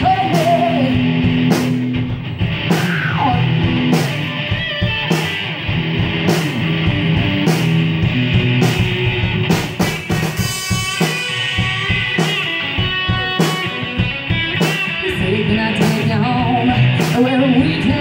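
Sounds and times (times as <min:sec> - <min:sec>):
drum kit: 0:00.0 - 0:18.0
electric guitars: 0:00.0 - 0:18.0.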